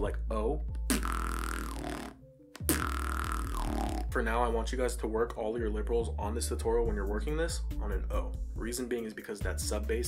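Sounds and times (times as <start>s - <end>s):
beatbox sub-bass lip roll: 0.9s - 4.2s.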